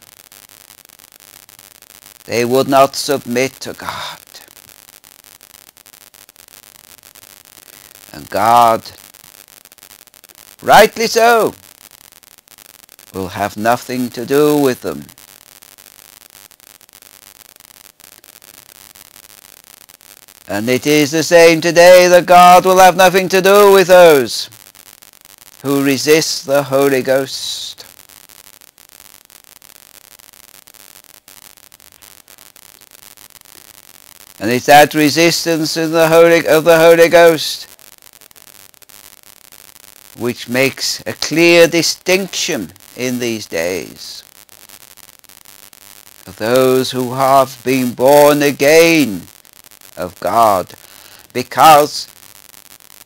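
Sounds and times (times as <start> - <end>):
steady low hiss: 0.0 - 53.0
faint crackling clicks: 27.8 - 34.4.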